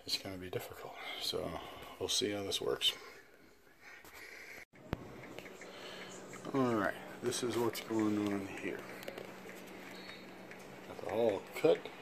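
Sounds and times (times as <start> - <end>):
faint low hum: 4.8 - 12.0.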